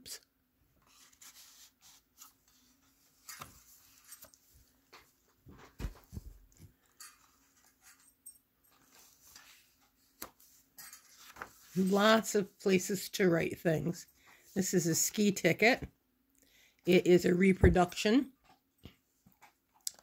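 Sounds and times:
pages turning: 0.8 - 4.7, 8.8 - 11.9
paper rustling: 0.8 - 7.6, 8.8 - 12.2.

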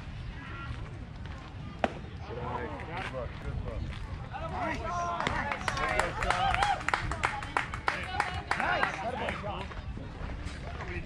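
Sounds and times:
spectators shouting and cheering: 4.3 - 6.9.

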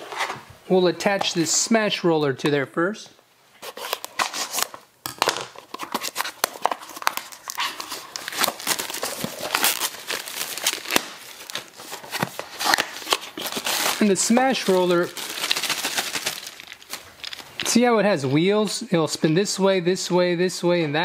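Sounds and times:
plastic packaging crinkling: 5.5 - 17.7.

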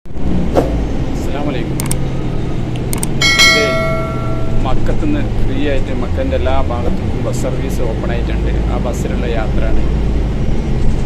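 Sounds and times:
bus engine and road rumble: 0.1 - 11.0
sharp clicks: 1.8 - 2.0, 2.8 - 3.2
bright electronic chime: 3.2 - 5.0.

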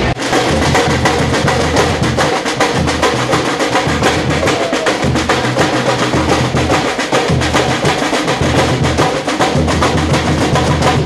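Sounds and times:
samba percussion drumming: 0.0 - 11.0.

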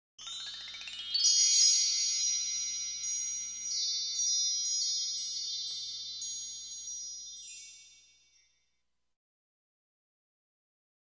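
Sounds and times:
high chime tones ringing: 0.2 - 8.7.

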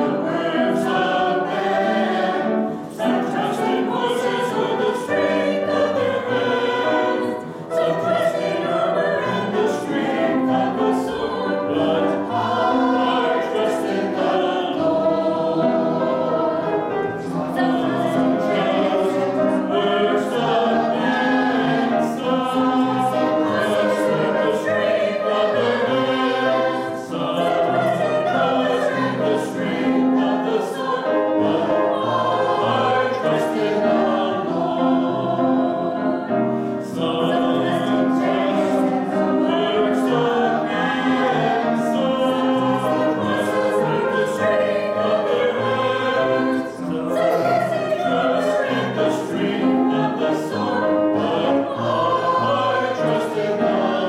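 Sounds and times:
choir singing: 0.0 - 54.0
piano accompaniment: 0.0 - 54.0.

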